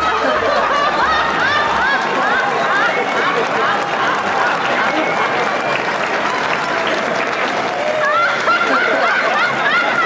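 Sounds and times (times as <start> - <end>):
applause: 0.0 - 10.0
audience laughing: 0.0 - 10.0.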